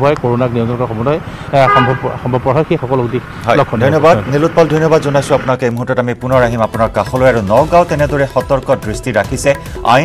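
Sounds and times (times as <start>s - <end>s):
vehicle horn toot: 1.6s - 2.2s
man speaking: 1.6s - 5.5s.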